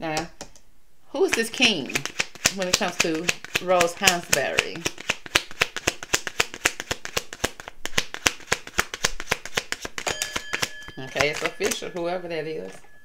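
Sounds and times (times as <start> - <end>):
cards being shuffled: 1.2 - 12.8.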